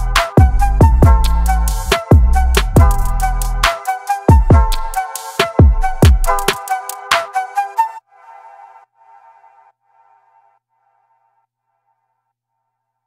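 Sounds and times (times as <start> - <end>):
background music with drums: 0.0 - 7.4.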